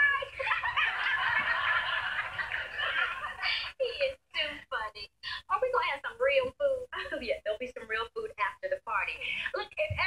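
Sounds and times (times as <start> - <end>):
studio audience laughing: 0.2 - 3.8.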